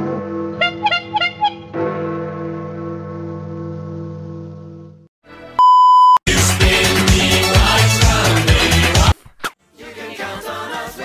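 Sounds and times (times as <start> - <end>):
high steady beep tone: 5.6 - 6.2.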